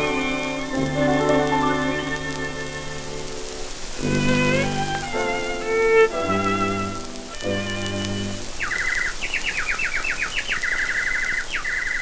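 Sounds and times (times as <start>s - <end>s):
string music: 0.0s - 8.7s
bird-like chirping and trilling: 5.9s - 12.0s.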